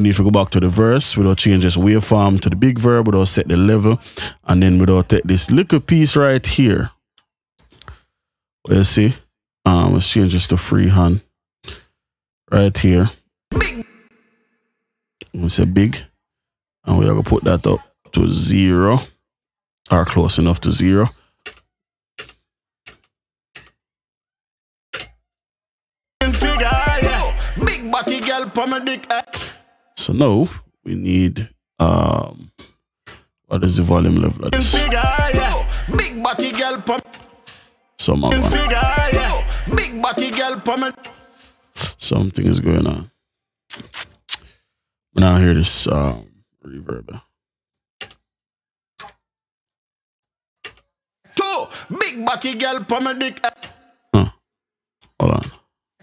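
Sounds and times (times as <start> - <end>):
computer mouse clicking: 21.5 - 23.8.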